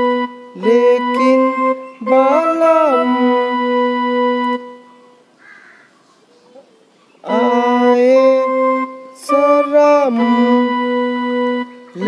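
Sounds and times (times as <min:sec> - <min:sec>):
electronic keyboard note: 0:00.0 - 0:05.2, 0:07.2 - 0:12.0.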